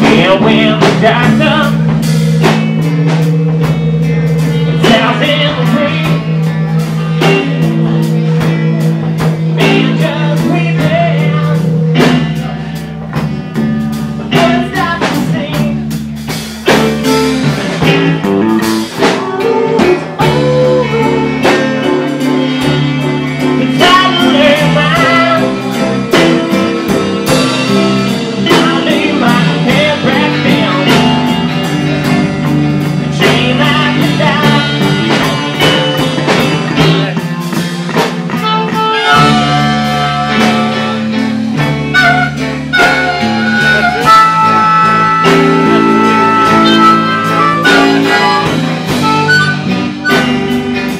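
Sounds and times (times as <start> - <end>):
person singing: 0.0 - 2.0, 4.5 - 17.3, 18.6 - 37.6, 38.4 - 50.9
drum kit: 0.0 - 50.9
electric bass: 0.0 - 50.9
electric guitar: 0.0 - 50.9.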